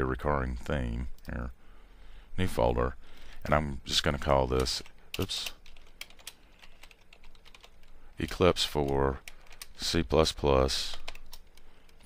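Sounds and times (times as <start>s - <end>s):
faint keyboard typing: 4.2s - 12.0s.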